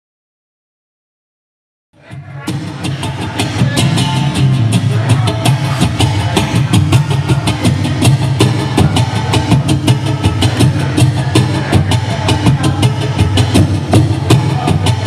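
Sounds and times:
acoustic guitar strummed: 2.2s - 12.1s.

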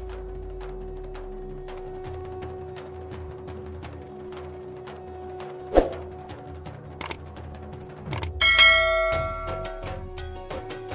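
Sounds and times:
bell chime ringing: 8.4s - 10.0s.

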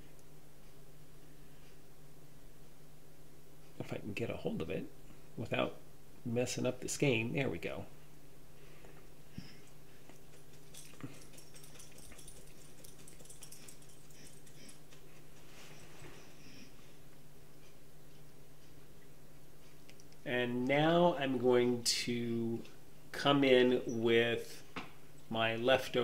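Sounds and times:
low kitchen hum: 0.0s - 26.0s
faint clicks: 19.6s - 20.8s.

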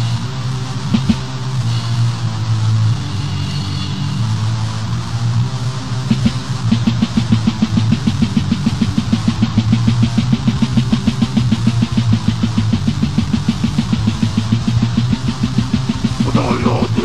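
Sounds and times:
death metal band playing: 12.7s - 17.0s.

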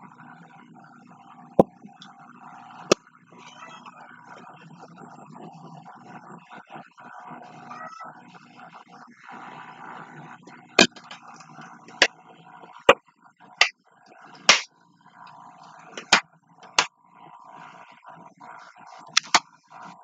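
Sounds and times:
sharp clicks of plastic box: 19.1s - 19.4s.

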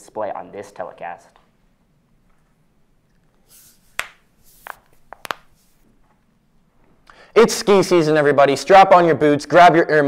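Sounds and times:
papers rustling: 3.6s - 6.2s.

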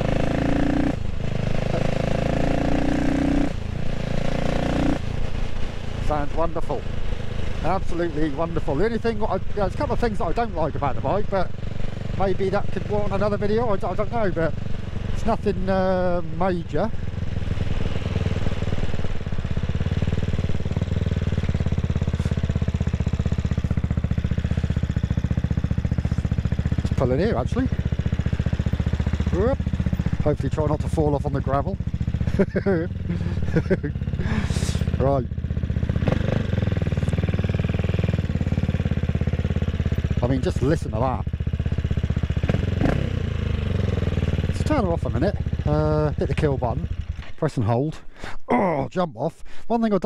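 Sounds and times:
motorcycle engine accelerating: 0.0s - 47.4s.

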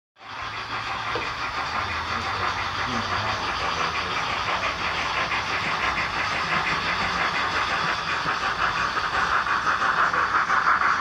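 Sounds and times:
model steam locomotive hissing: 0.2s - 11.0s.

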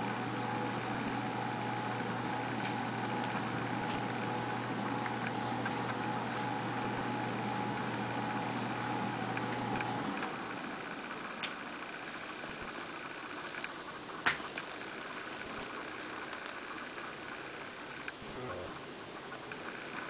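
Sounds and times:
steady mechanical hum: 0.0s - 20.0s.

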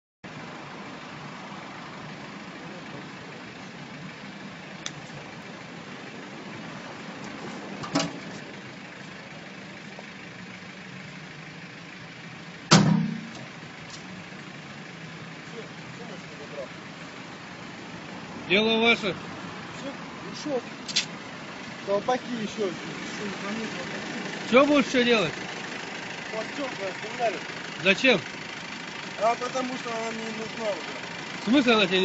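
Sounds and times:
street traffic hum: 0.2s - 32.0s
blows banging car body: 12.7s - 13.5s.

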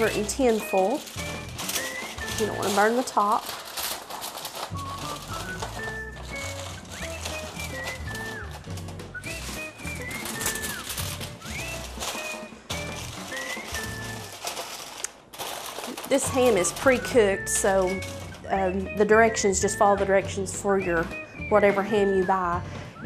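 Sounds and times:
aluminium foil crinkling: 0.0s - 18.9s
background music: 0.0s - 23.0s.

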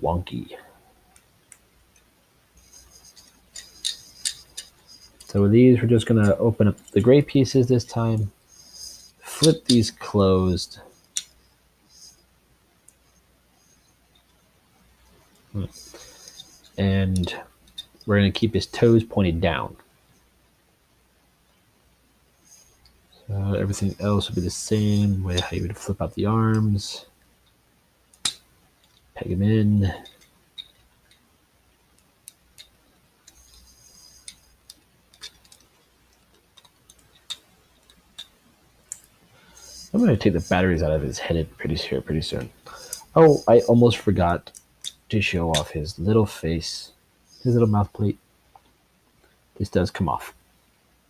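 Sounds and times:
soft scraping rustle: 2.6s - 12.3s, 39.0s - 44.5s
plastic toy parts clicking: 3.2s - 5.3s, 11.0s - 11.3s, 34.2s - 39.1s.

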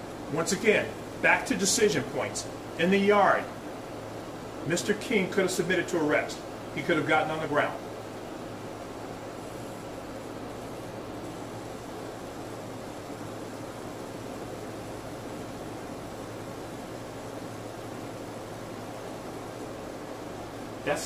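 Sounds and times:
room tone hiss: 0.0s - 21.0s.

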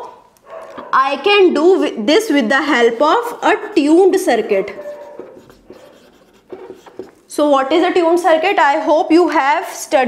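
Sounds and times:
marker scratching on whiteboard: 3.2s - 7.4s.

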